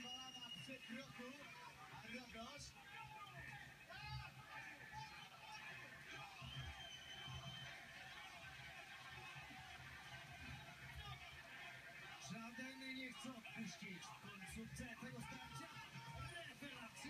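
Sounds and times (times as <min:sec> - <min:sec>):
whistle-like tone: 0:00.0 - 0:00.8, 0:06.4 - 0:07.7
muffled arena noise from tv: 0:00.0 - 0:17.0.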